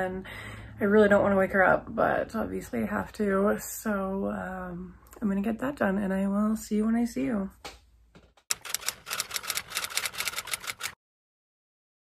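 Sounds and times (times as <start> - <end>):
rapid irregular clicking: 8.4 - 11.0.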